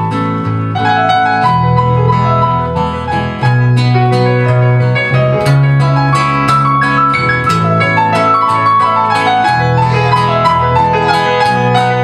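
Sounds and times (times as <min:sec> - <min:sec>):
folk band playing: 0:00.9 - 0:12.0.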